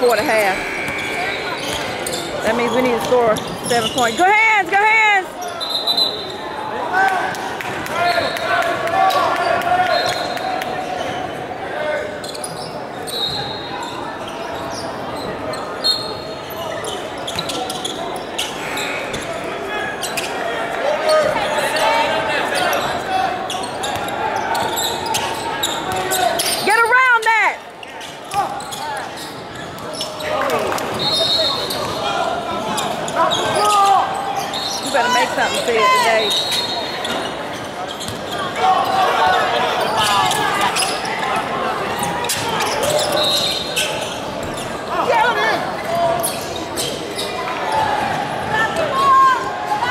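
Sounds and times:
people shouting and talking: 0:00.0 - 0:49.9.

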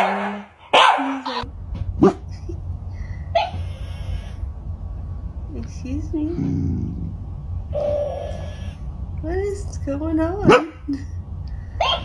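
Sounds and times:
dog whining: 0:07.7 - 0:08.8.

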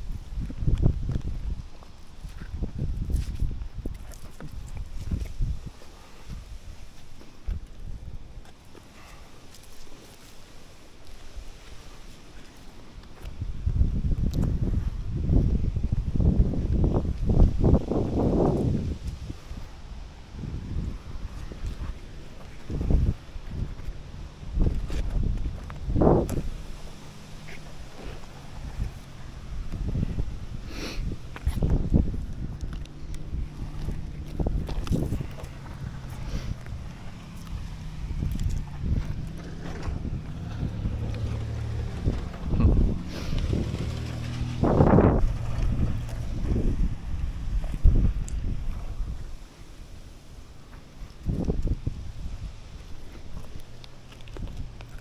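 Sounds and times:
body rubbing against tree bark: 0:00.0 - 0:55.0
wind rumbling on microphone: 0:00.0 - 0:55.0.

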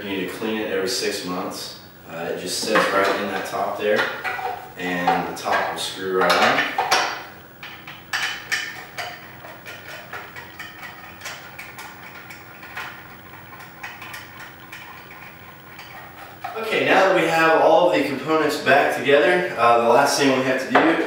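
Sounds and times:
man talking: 0:00.0 - 0:04.2, 0:04.8 - 0:06.8, 0:16.6 - 0:21.0
faint steady hum: 0:00.0 - 0:21.0.

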